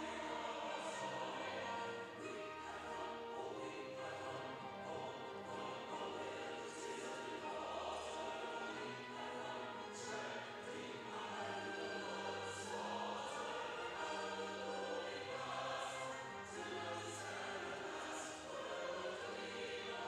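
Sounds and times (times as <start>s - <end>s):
choir singing sustained notes: 0.0s - 20.0s.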